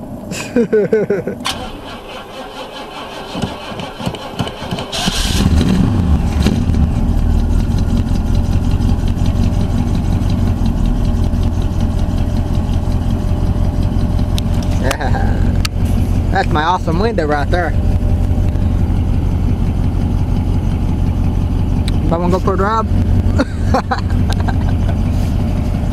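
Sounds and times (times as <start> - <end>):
car engine cranking and starting: 1.4 - 25.9.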